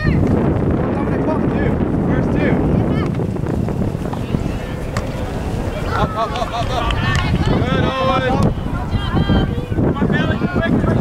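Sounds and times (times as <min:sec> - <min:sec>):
distant voices calling out: 0:00.0 - 0:11.0
wind rumbling on microphone: 0:00.0 - 0:11.0.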